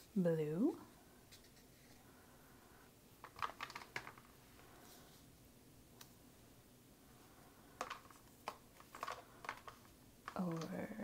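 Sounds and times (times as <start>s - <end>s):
paper clicks and rustles: 3.2s - 4.3s, 7.8s - 11.0s.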